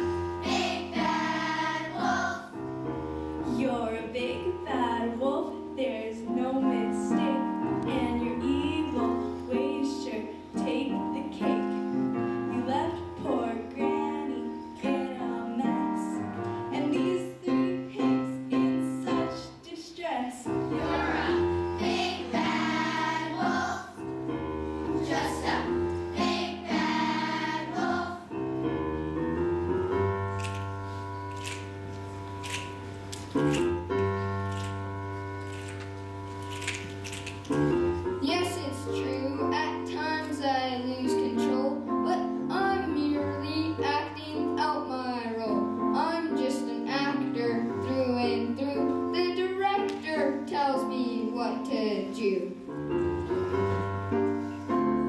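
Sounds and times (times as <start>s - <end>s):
children's chorus singing: 0.4s - 2.5s, 20.7s - 24.0s, 24.9s - 28.3s
instrumental accompaniment: 20.4s - 55.0s.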